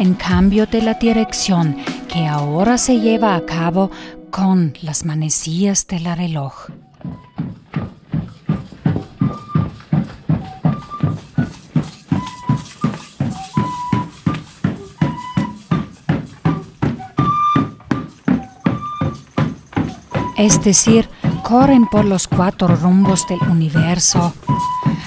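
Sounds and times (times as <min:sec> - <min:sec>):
drum beating steadily: 0:00.0 - 0:04.5, 0:06.6 - 0:25.0
high flute tune: 0:10.4 - 0:19.3, 0:20.1 - 0:25.0.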